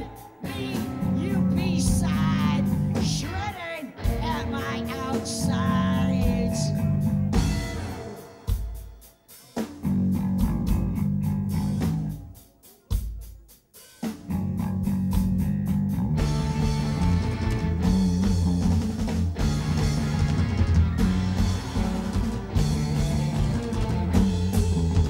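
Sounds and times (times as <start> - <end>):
rock band playing: 0.0 - 25.0.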